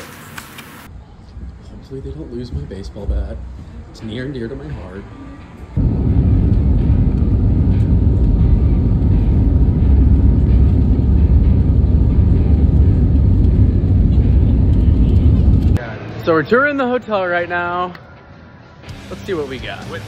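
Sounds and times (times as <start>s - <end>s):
jet engine and rolling rumble: 5.8s - 15.8s.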